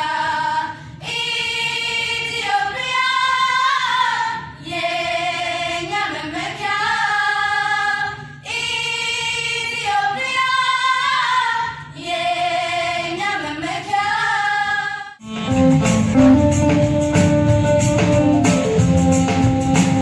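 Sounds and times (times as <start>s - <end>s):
girls singing unaccompanied: 0.0s - 15.2s.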